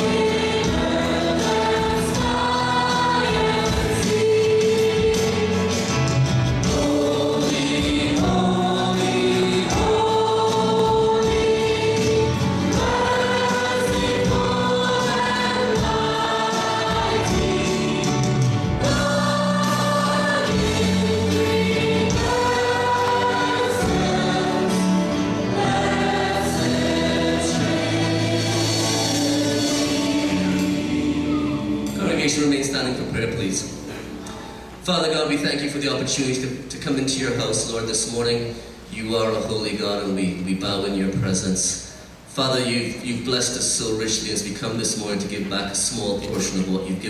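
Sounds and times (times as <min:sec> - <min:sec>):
group singing gospel song: 0:00.0 - 0:32.4
live band with piano and guitars: 0:00.0 - 0:35.4, 0:45.1 - 0:47.0.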